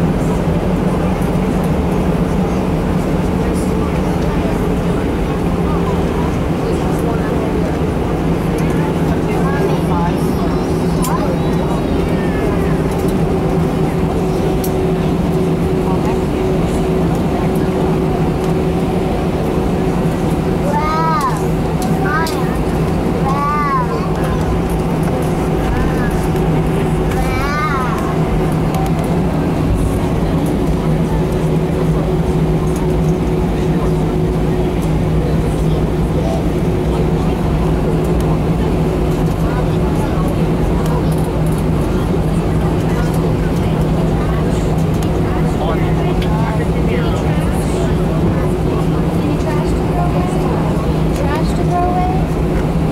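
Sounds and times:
jet engines humming: 0.0s - 52.9s.

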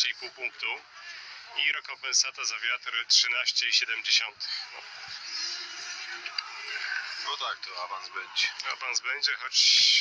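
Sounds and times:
crowd din: 4.5s - 8.9s.

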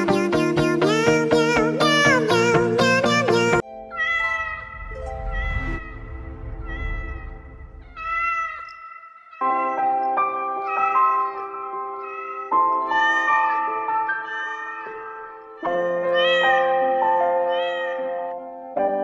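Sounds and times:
background music with sustained notes: 0.0s - 19.0s
cat meowing: 3.9s - 6.0s, 6.6s - 10.0s, 12.0s - 18.2s.

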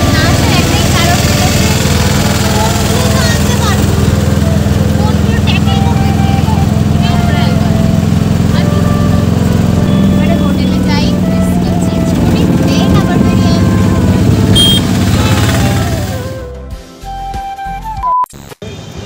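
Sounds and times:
auto-rickshaw engine running: 0.0s - 16.5s
wind on microphone: 11.9s - 16.2s.

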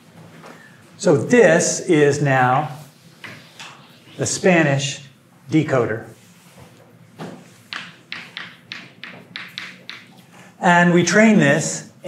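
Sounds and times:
chalk tapping on chalkboard: 3.2s - 3.8s, 7.6s - 10.3s.

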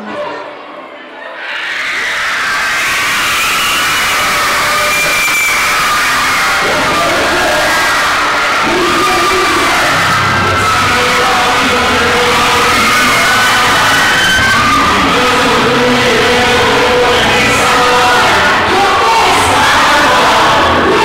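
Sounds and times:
crowd cheering and screaming: 0.0s - 21.0s
music: 0.0s - 21.0s.

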